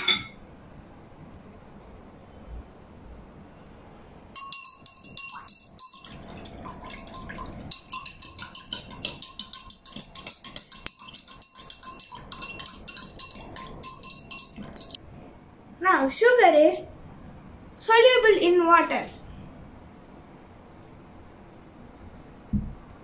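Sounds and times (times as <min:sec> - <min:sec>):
metal spoon clinking in glass: 0:04.4 - 0:15.0.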